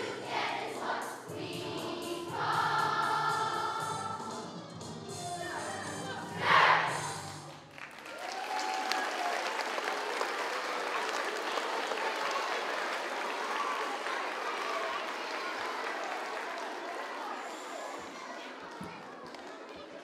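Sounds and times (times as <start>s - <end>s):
audience applauding: 7.4s - 18.0s.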